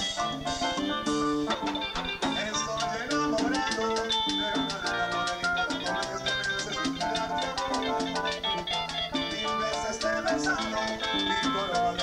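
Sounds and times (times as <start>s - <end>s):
electronic keyboard melody: 0.0s - 12.0s
quick percussion beat: 0.0s - 12.0s.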